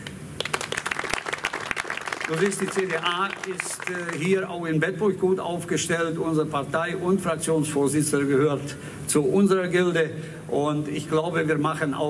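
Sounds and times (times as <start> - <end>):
audience applauding: 0.4 - 4.4.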